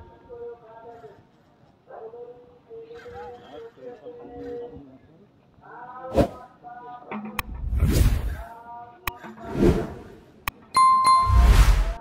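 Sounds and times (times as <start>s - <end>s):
bell-like ding: 10.8s - 12.0s.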